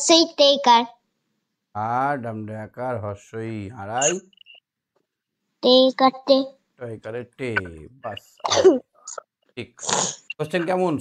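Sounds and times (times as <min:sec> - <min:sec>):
man speaking: 0:01.8 - 0:04.2, 0:06.8 - 0:08.4, 0:09.6 - 0:11.0
throat clearing: 0:03.9 - 0:04.2.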